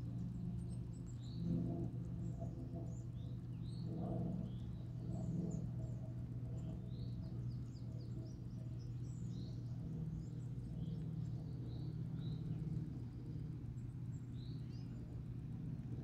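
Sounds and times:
steady low hum: 0:00.0 - 0:16.0
small birds chirping: 0:04.4 - 0:16.0.

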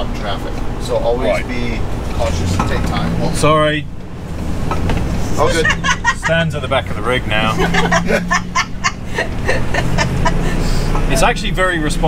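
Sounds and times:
vehicle engine and road hum: 0:00.0 - 0:12.0
soft chuckling laughter: 0:07.6 - 0:10.6.

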